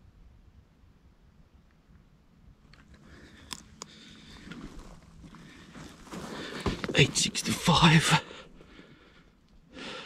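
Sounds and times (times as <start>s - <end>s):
small sharp clicks: 2.6s - 4.0s
dry twigs rustling and crackling: 2.6s - 7.5s.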